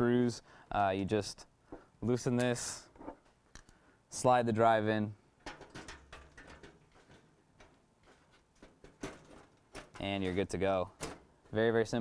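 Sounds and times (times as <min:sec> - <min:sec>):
small clicks and scrapes: 0:05.4 - 0:11.2.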